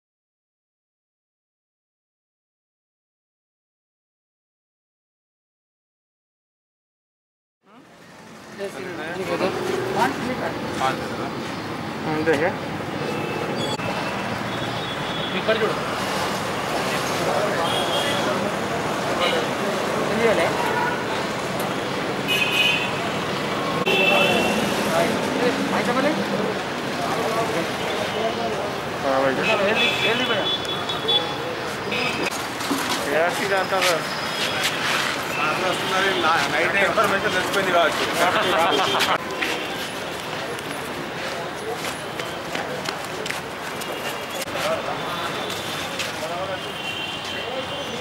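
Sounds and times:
traffic noise: 0:07.6 - 0:48.0
outdoor murmur with faint voices: 0:15.1 - 0:48.0
people talking: 0:16.7 - 0:20.8, 0:23.8 - 0:32.3, 0:32.9 - 0:48.0
footsteps on paving: 0:39.0 - 0:44.8.

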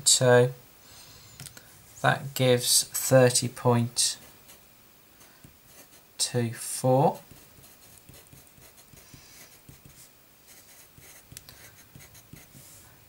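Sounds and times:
pencil scratching on paper: 0:05.7 - 0:06.1, 0:07.1 - 0:12.8.

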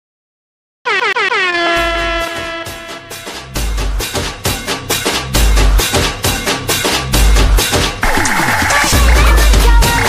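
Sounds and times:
air horn blasts: 0:00.8 - 0:03.6
deep bass beat: 0:01.8 - 0:10.0.

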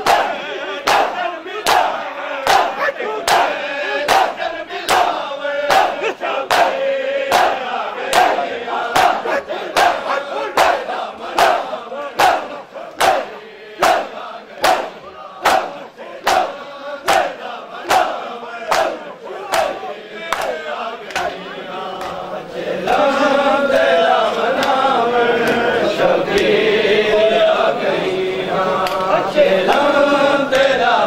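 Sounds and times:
crowd slapping chests in unison: 0:00.0 - 0:31.0
crowd voices: 0:00.0 - 0:31.0
men chanting together: 0:00.0 - 0:31.0.

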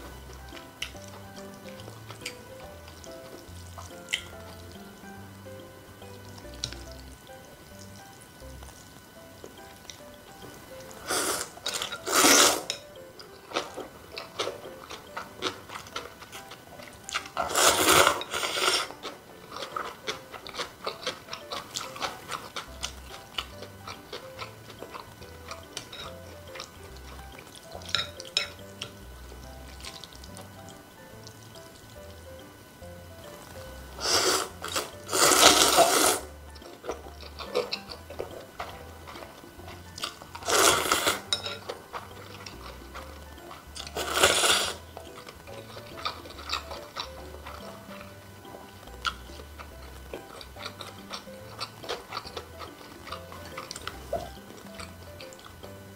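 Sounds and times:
soft wet chewing: 0:00.0 - 0:55.9
slurping noodles: 0:11.0 - 0:12.8, 0:17.4 - 0:20.0, 0:34.0 - 0:36.3, 0:40.0 - 0:41.3, 0:43.5 - 0:44.8.

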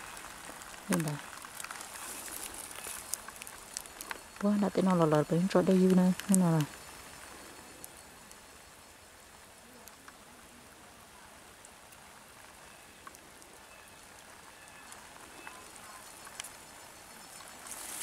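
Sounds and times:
faint outdoor hiss: 0:00.0 - 0:18.0
faint ticks: 0:00.1 - 0:08.8, 0:09.6 - 0:10.3, 0:11.6 - 0:18.0
person speaking: 0:00.9 - 0:01.2.

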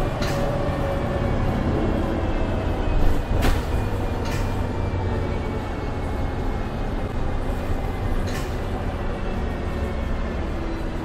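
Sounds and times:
bus drivetrain rumble: 0:00.0 - 0:11.0.

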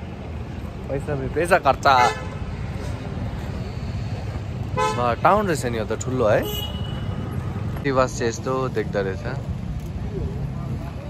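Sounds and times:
low rumble of road vehicles: 0:00.0 - 0:11.0.

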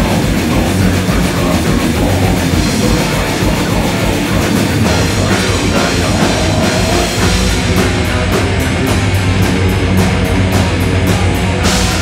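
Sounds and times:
heavy metal band playing: 0:00.0 - 0:12.0
rapid kick drum beat: 0:00.0 - 0:12.0.

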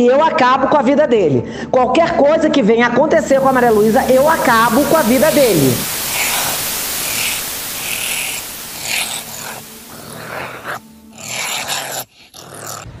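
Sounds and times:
rough static hiss: 0:03.1 - 0:10.9.

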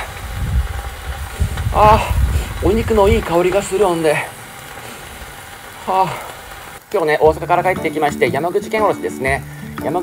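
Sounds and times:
wind buffeting microphone: 0:00.0 - 0:05.6
steak sizzling on grill: 0:00.0 - 0:10.0.

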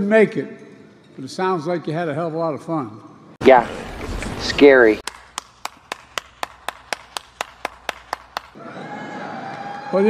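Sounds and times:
person clapping hands: 0:05.0 - 0:08.6.

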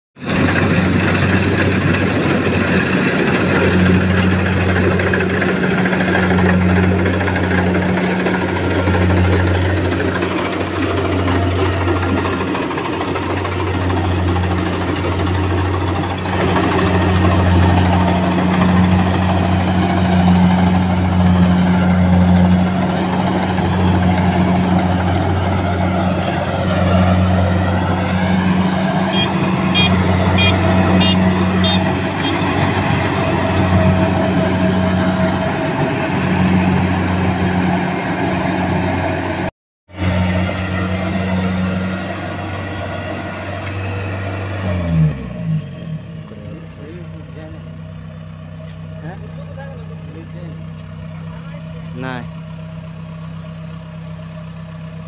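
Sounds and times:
combine harvester diesel engine: 0:00.2 - 0:55.0.

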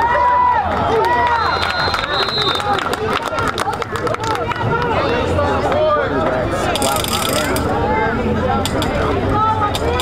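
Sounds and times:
people's voices: 0:00.0 - 0:10.0
rapid ratcheting clatter: 0:06.6 - 0:07.8, 0:08.6 - 0:09.1.

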